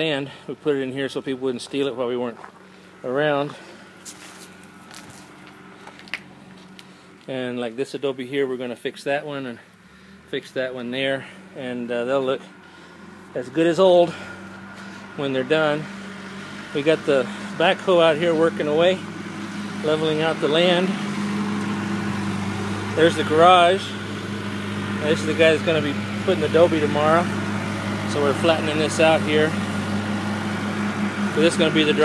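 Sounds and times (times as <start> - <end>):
diesel engine running steadily: 0.0 - 32.0.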